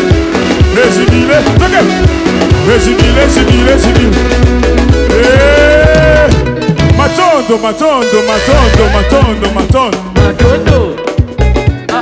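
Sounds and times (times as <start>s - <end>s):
electric guitar bending notes: 0.0s - 12.0s
live band playing dance music: 0.0s - 12.0s.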